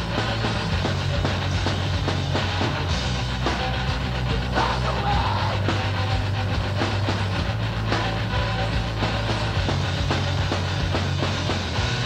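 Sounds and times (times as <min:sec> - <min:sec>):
distorted guitar and bass: 0:00.0 - 0:12.0
drum and cymbal hits: 0:00.0 - 0:12.0.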